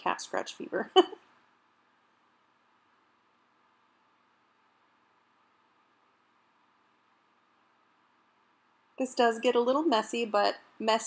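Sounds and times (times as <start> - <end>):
faint steady hiss: 0.0 - 11.0
woman laughing: 0.8 - 1.2.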